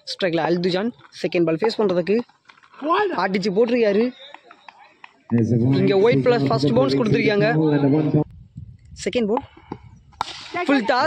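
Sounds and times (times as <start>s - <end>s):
commentator speaking: 5.3s - 8.3s.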